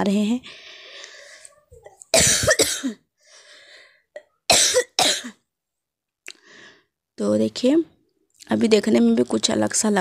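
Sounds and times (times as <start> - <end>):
person coughing: 2.1 - 3.0, 4.2 - 5.4.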